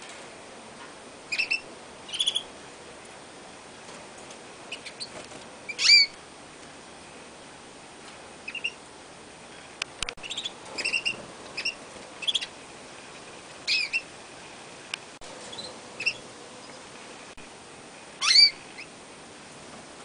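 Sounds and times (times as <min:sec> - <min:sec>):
canaries chirping: 0:01.3 - 0:02.5, 0:04.7 - 0:06.2, 0:08.4 - 0:08.8, 0:10.2 - 0:12.6, 0:13.6 - 0:14.1, 0:15.3 - 0:17.0, 0:18.2 - 0:18.9.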